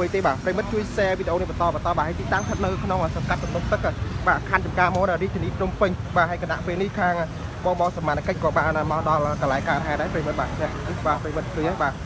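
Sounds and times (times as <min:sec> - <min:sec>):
people talking: 0:00.0 - 0:12.0
street traffic rumble: 0:00.0 - 0:12.0.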